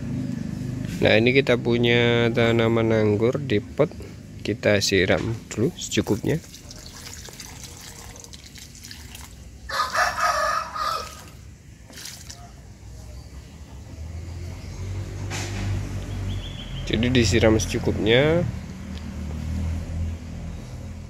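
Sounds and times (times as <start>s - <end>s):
liquid splashing onto soil: 5.9s - 9.5s, 11.0s - 12.6s
rooster crowing: 9.6s - 11.4s
low engine hum: 12.6s - 21.0s.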